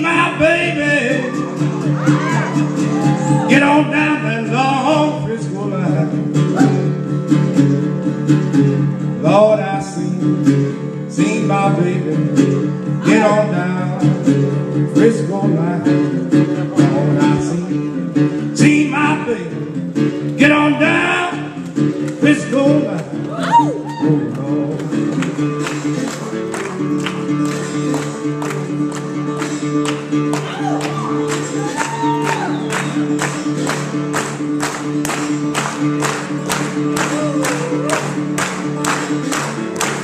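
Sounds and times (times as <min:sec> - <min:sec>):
acoustic guitar country blues: 0:00.0 - 0:40.0.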